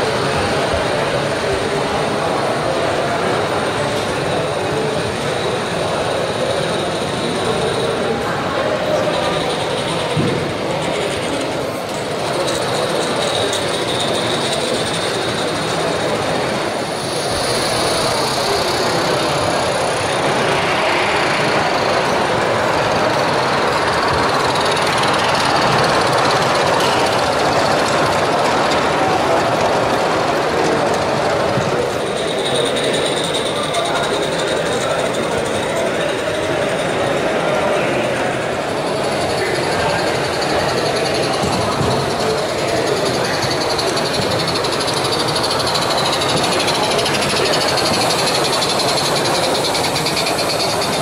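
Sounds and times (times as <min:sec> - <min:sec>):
exhibition hall background din: 0:00.0 - 0:51.0
model trains running: 0:00.0 - 0:51.0.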